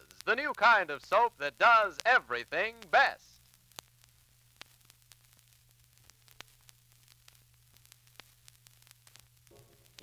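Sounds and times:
low steady hum: 0.0 - 10.0
record surface clicks and crackle: 0.0 - 10.0.

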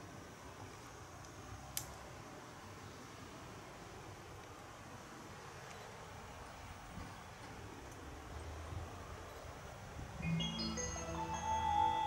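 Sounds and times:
chiming marimba-like melody: 10.2 - 12.0.

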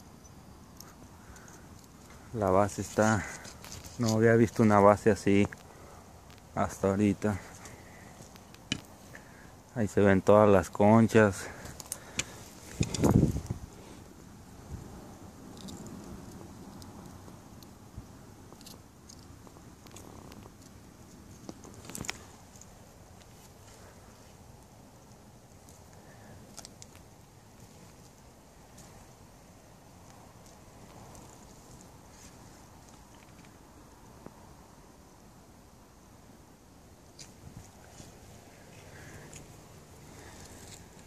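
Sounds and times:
walking stick knocking on stones: 8.2 - 8.9
handling noise: 11.6 - 13.8.

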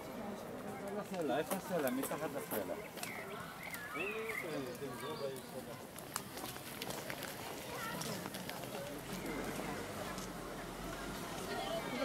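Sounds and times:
footsteps on paved path: 0.0 - 12.0
people talking outdoors: 0.0 - 12.0.

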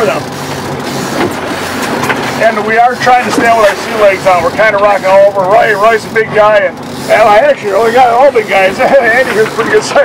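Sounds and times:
boat engine droning: 0.0 - 10.0
water noise: 0.0 - 10.0
wind: 0.0 - 10.0.

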